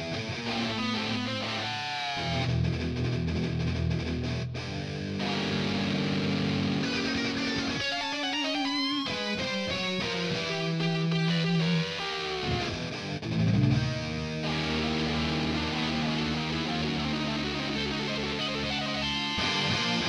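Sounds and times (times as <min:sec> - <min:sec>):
electric guitar shredding: 0:00.0 - 0:20.0.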